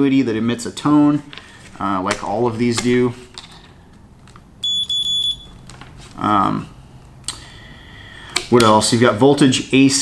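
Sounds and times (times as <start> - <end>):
high-pitched continuity beep: 4.6 - 5.5.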